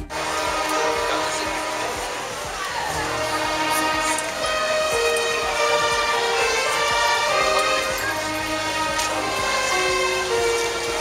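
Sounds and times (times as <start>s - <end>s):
violin ensemble playing: 0.0s - 11.0s.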